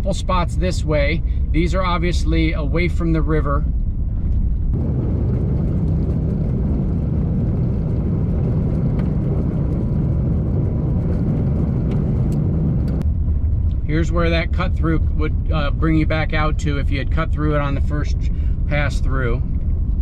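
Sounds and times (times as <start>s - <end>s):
vehicle rumbling on gravel: 2.5s - 20.0s.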